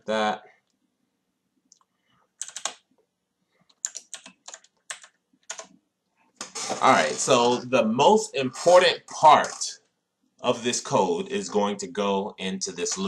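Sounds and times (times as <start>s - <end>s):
typing on computer keyboard: 2.4s - 2.9s, 3.7s - 5.8s.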